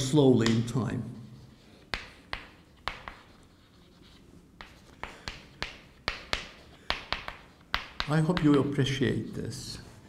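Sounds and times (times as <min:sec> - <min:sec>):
chalk tapping and scratching: 0:00.0 - 0:00.8, 0:01.4 - 0:09.2.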